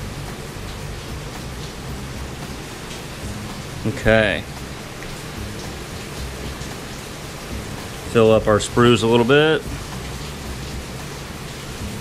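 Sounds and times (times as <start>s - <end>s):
heavy rain hissing: 0.0s - 12.0s.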